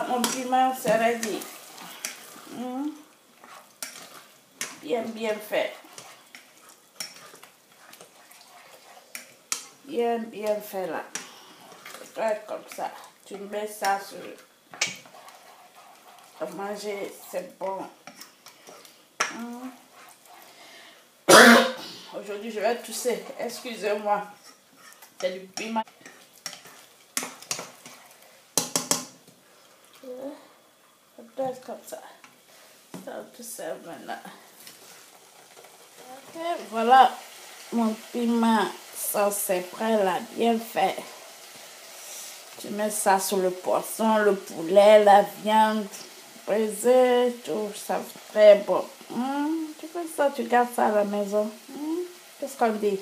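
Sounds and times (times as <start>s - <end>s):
spatula scraping sauce in a saucepan: 0.0s - 20.7s, 22.2s - 29.0s, 34.4s - 38.2s
spatula knocking on pan: 28.6s - 29.2s.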